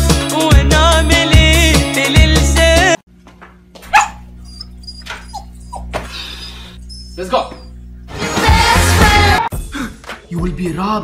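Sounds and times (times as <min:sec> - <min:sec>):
pet animal whimpering: 0:04.0 - 0:08.0.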